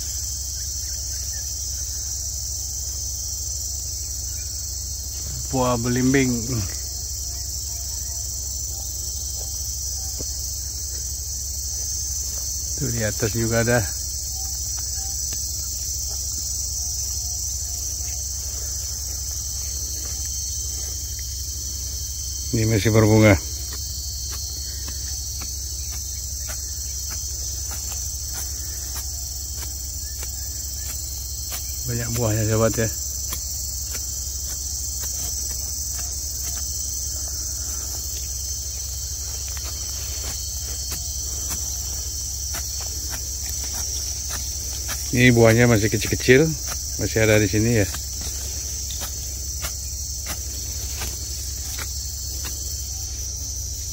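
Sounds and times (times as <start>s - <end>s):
insects droning: 0.0s - 53.9s.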